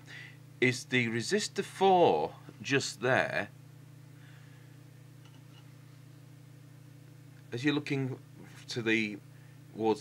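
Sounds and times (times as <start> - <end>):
low electronic hum with hiss: 0.0 - 10.0.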